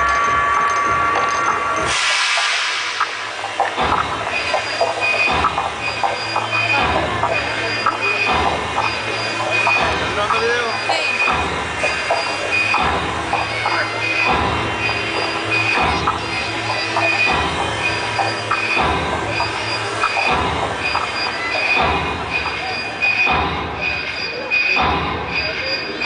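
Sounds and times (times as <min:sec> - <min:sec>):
loud amplified live music: 0:00.0 - 0:05.2.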